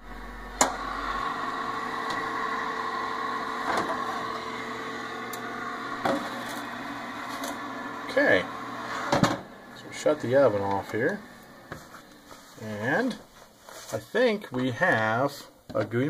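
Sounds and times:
toaster oven humming: 0.0 - 13.0.

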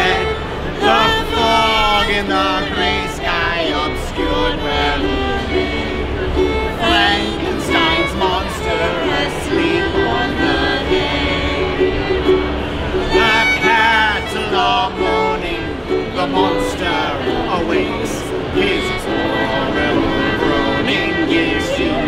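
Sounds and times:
plucked mandolin: 0.0 - 22.0
violin: 0.0 - 22.0.

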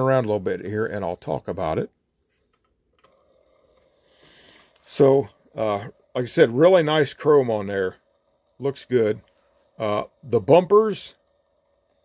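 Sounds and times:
turntable ticking whir: 3.0 - 12.0.

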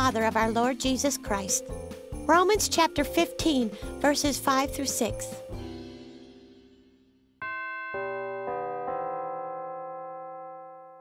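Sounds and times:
piano notes ringing: 7.4 - 11.0.

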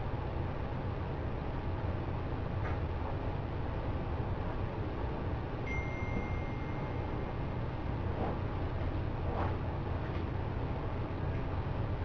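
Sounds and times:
low room hum and hiss: 0.0 - 12.0
thin high steady tone: 5.6 - 8.0.

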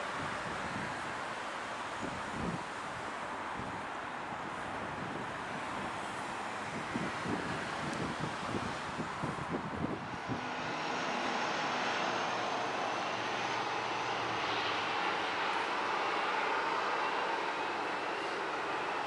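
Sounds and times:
distant aircraft: 0.2 - 19.0
turboprop engines droning: 0.7 - 19.0
wind buffeting microphone: 4.4 - 19.0.

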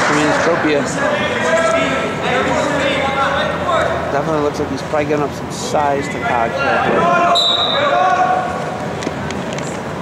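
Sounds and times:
people calling out: 6.5 - 8.7.

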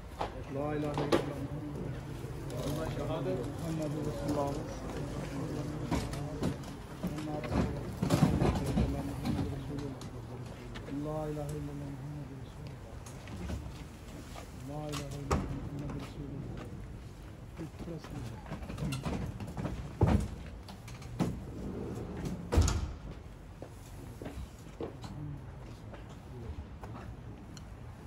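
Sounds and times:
men's voices murmuring: 0.2 - 20.0, 23.7 - 28.0.

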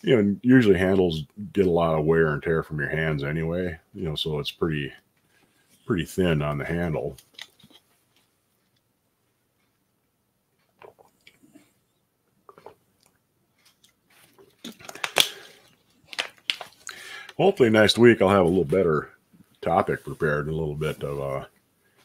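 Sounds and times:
man sipping: 12.5 - 12.8
plastic bottle crinkles and clicks: 13.8 - 17.0.

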